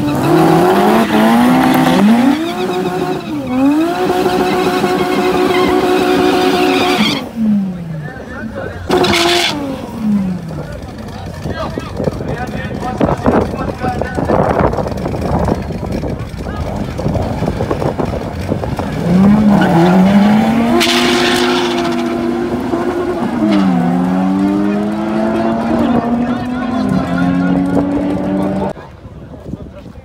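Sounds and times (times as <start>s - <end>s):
race car engines revving: 0.0s - 28.8s.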